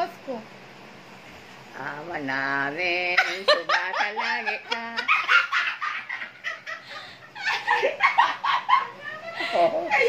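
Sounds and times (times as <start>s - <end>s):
woman laughing: 3.0s - 10.0s.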